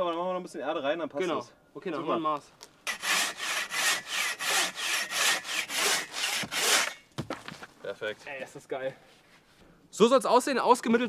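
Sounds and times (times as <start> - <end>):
hand saw cutting log: 2.9 - 7.0.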